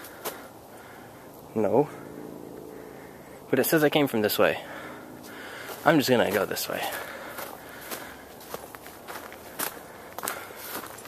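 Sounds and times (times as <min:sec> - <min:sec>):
footsteps on dry leaves: 0:04.7 - 0:11.0.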